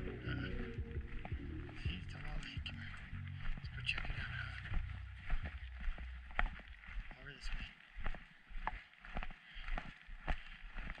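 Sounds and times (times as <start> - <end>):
low rumble: 0.0 - 6.8
footsteps on gravel: 0.0 - 11.0.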